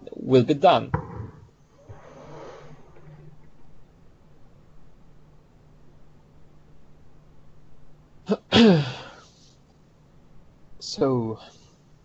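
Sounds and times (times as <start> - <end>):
man clearing throat: 8.3 - 9.1.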